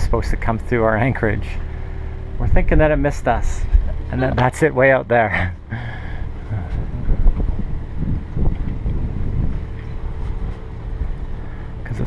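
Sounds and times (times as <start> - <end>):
faint steady hum: 0.0 - 12.0
wind buffeting microphone: 2.4 - 4.2, 6.2 - 12.0.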